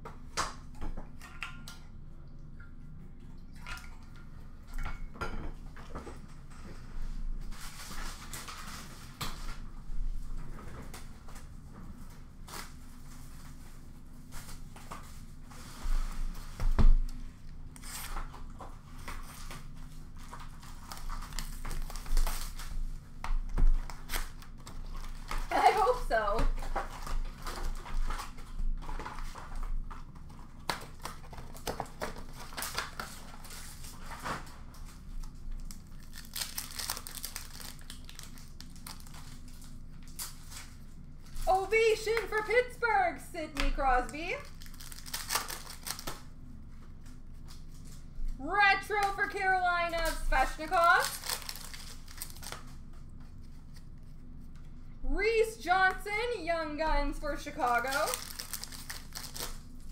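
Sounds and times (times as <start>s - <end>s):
wrappers crinkling: 17.7s - 42.6s, 43.7s - 46.3s, 48.9s - 53.9s, 57.4s - 59.9s
foil packs tearing: 17.8s - 22.7s, 23.8s - 29.6s, 30.5s - 40.8s, 44.3s - 46.2s, 50.0s - 52.8s, 57.5s - 59.9s
cards rustling and clicking: 57.7s - 59.9s.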